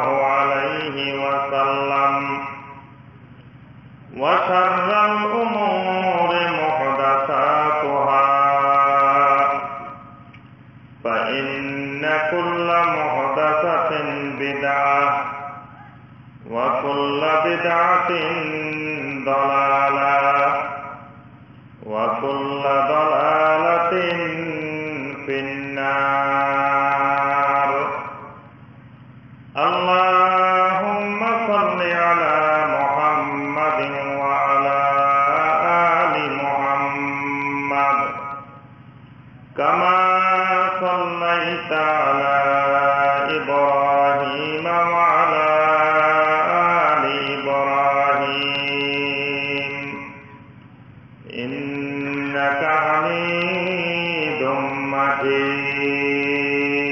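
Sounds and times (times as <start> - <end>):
man chanting: 0.0 - 3.1, 4.0 - 10.3, 11.0 - 21.2, 21.8 - 28.6, 29.5 - 38.6, 39.4 - 50.6, 51.2 - 56.9.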